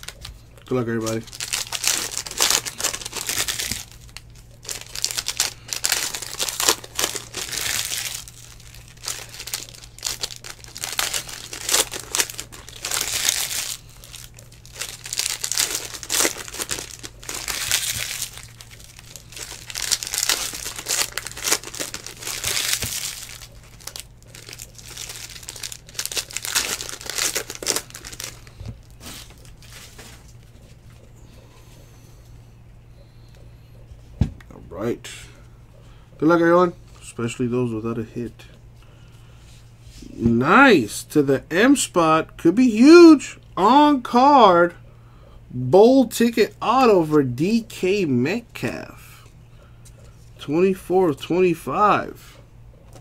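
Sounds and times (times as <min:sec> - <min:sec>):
foil wrappers tearing and crinkling: 0:00.0 - 0:00.3, 0:00.9 - 0:30.4
faint low hum: 0:00.0 - 0:53.0.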